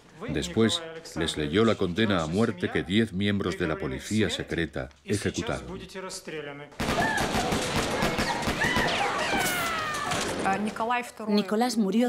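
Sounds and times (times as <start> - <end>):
rapid burst of gunshots: 6.8 - 9.1
high screams: 8.2 - 10.3.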